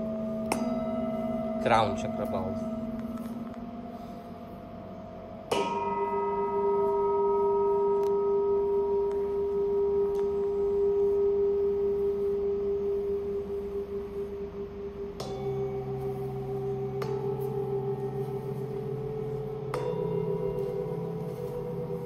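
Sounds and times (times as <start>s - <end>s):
second bowl struck: 0.0s - 3.9s, 5.3s - 11.9s, 15.1s - 22.0s
singing bowl ringing: 0.0s - 22.0s.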